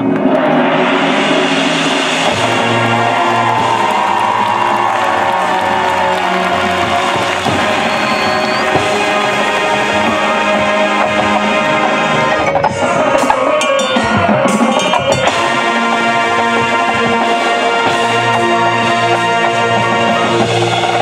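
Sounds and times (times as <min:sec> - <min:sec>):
marching band playing: 0:00.1 - 0:21.0
audience cheering: 0:02.2 - 0:13.2.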